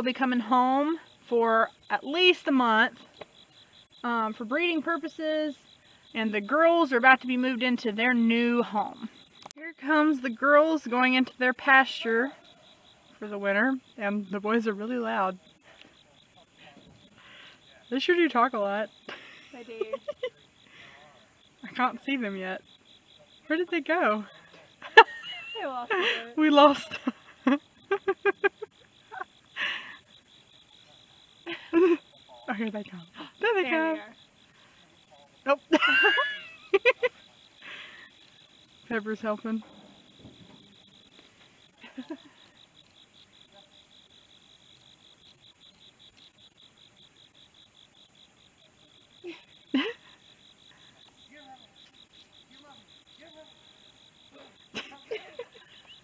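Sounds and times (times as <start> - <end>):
insects chirping: 0.0 - 56.0
person laughing: 31.5 - 32.0, 35.8 - 37.1, 49.2 - 50.1, 54.7 - 56.0.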